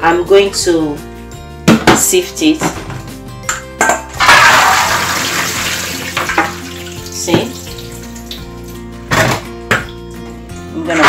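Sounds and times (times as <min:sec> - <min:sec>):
water gushing into sieve: 0:04.2 - 0:08.4.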